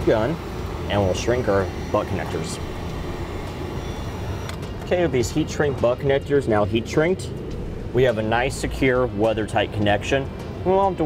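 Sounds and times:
heat gun blowing air: 0.7s - 4.6s.

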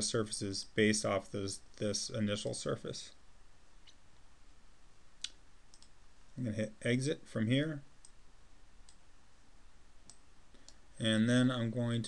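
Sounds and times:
faint room hiss: 0.0s - 12.0s
computer mouse clicks: 5.2s - 6.0s, 8.8s - 9.0s, 10.0s - 10.8s.

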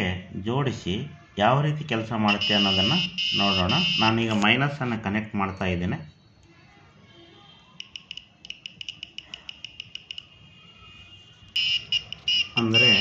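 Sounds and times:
person speaking: 2.2s - 5.0s, 12.4s - 13.0s
high-pitched buzzer beeping: 2.3s - 4.4s, 11.6s - 13.0s.

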